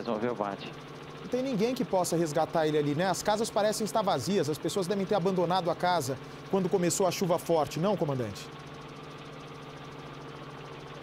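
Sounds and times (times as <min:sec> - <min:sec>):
helicopter engine and rotor hum: 0:00.0 - 0:11.0.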